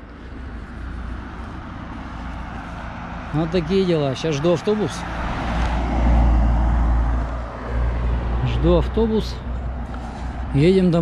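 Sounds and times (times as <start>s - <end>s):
vehicle driving past: 0.0s - 11.0s.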